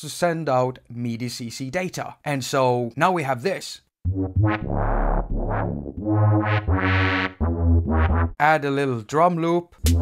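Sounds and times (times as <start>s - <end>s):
synthesizer with sweeping filter: 4.1s - 8.4s.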